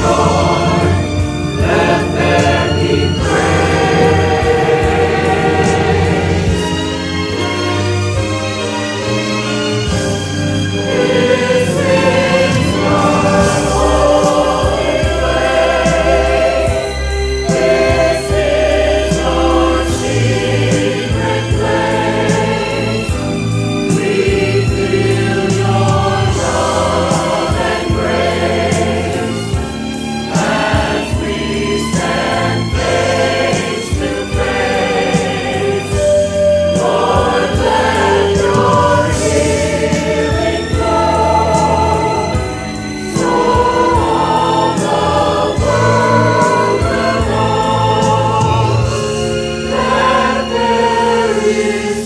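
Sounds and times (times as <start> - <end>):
choir singing gospel song: 0.0 - 8.3, 8.9 - 52.0
instrumental accompaniment with beat: 0.0 - 52.0.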